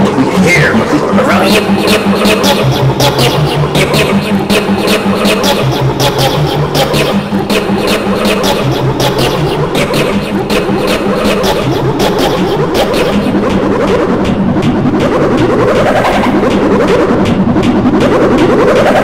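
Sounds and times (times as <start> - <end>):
garbled processed soundtrack: 0.0 - 19.0
rapid clicking: 0.9 - 19.0.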